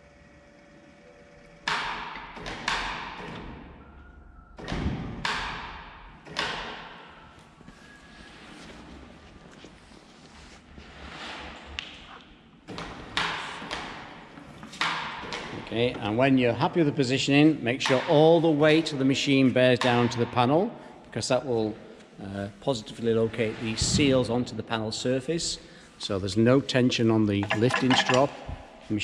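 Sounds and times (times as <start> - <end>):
echoing metal knocks and clunks: 27.4 - 28.8.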